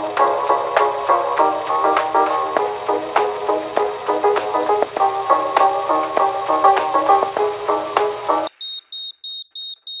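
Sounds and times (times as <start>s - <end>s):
background music: 0.0s - 8.5s.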